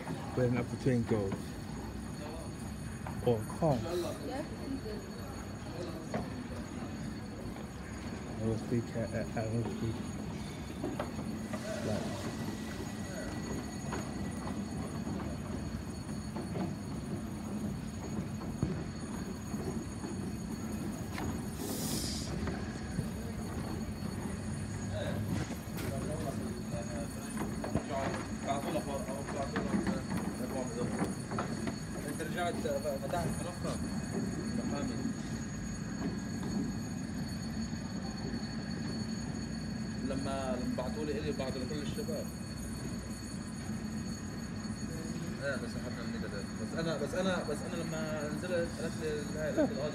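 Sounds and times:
faint high whine: 0.0 - 49.9
train rumbling slowly: 0.0 - 49.9
short hiss: 21.6 - 22.3.

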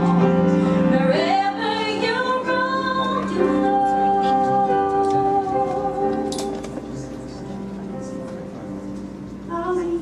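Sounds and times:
piano accompaniment: 0.0 - 10.0
woman singing a ballad: 0.8 - 6.7, 9.4 - 10.0.

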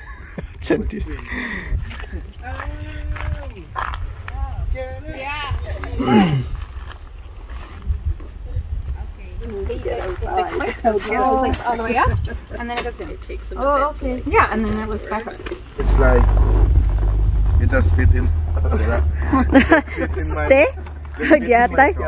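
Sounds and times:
people talking: 4.3 - 6.5, 8.0 - 16.4, 17.6 - 22.0.

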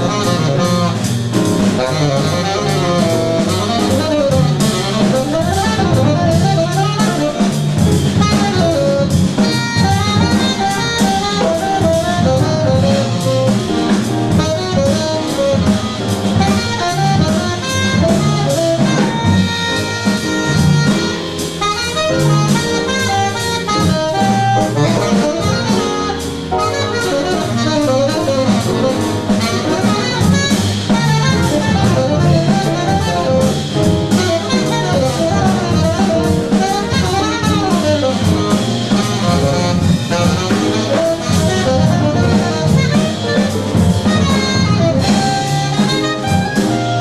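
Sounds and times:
drum kit cymbals and drums: 0.0 - 47.0
low bass notes: 0.0 - 47.0
tenor saxophone jazz line: 0.0 - 47.0.

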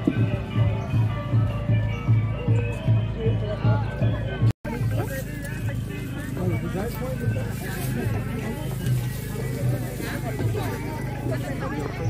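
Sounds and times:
background music: 0.0 - 12.0
voices: 0.0 - 12.0.

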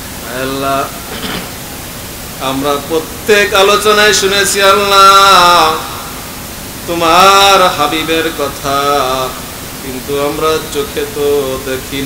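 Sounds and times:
steady background hiss: 0.0 - 12.0
man chanting a prayer: 0.2 - 1.0, 2.4 - 6.1, 6.8 - 12.0.

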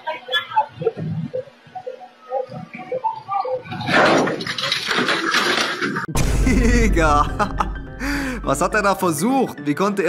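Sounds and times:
plastic steps clattering crash: 3.8 - 6.1.

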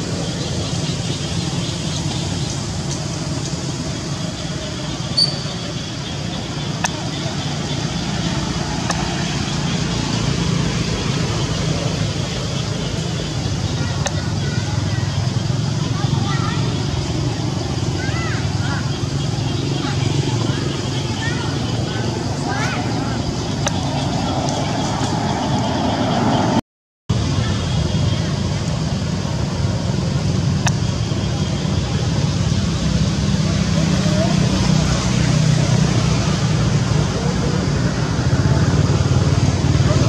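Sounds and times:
indistinct voices: 0.0 - 40.0
traffic rumble: 0.0 - 40.0
faint short chirps: 5.1 - 5.6.

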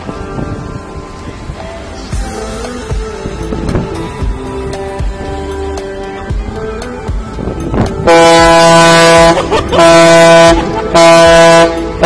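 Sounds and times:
ship's horn blasts: 8.0 - 12.0.

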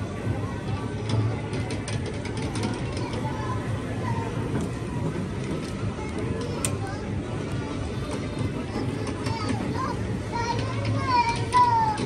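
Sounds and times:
carousel motor hum: 0.0 - 12.0.

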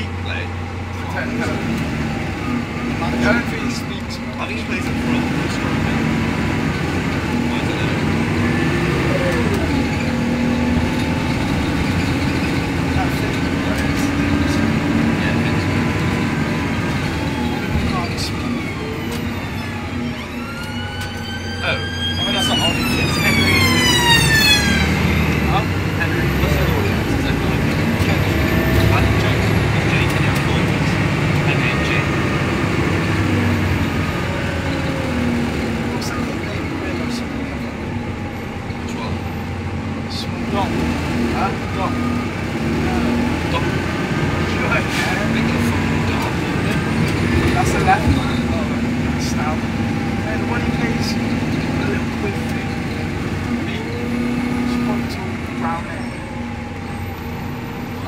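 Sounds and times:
bus engine: 0.0 - 58.0
road noise: 0.0 - 58.0
gliding high tone: 16.6 - 27.5.

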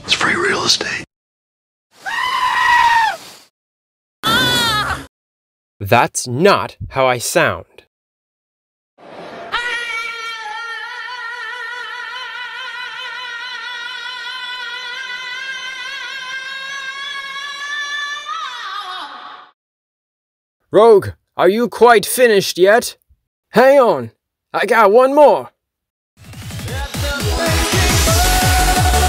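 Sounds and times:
person singing a long high note: 9.5 - 19.2, 26.7 - 29.0.

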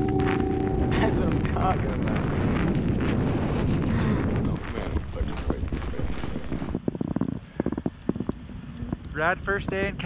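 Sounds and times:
snowboard riding over snow: 0.0 - 10.0.

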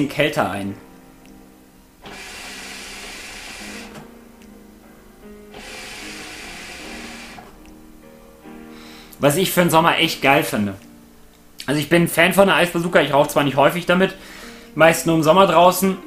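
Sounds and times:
quiet background music: 0.0 - 16.0
airy hiss of hookah drawing: 5.5 - 7.5.

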